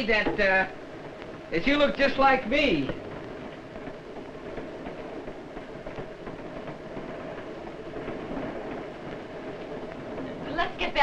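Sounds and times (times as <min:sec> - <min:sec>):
film soundtrack hiss and hum: 0:00.0 - 0:11.0
train rumble: 0:00.0 - 0:11.0.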